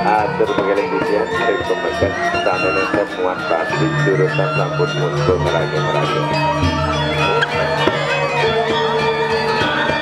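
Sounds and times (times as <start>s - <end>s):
person speaking: 0.0s - 6.4s
gamelan ensemble playing: 0.0s - 10.0s.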